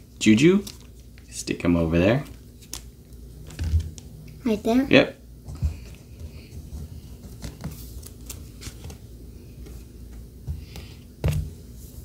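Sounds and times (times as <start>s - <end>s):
cards being shuffled and tapped: 0.4s - 1.4s, 2.0s - 4.2s, 5.4s - 12.0s.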